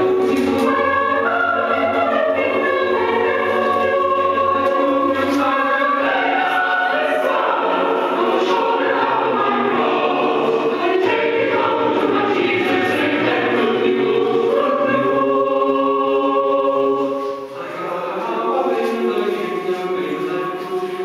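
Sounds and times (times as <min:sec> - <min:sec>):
choir singing in harmony: 0:00.0 - 0:21.0.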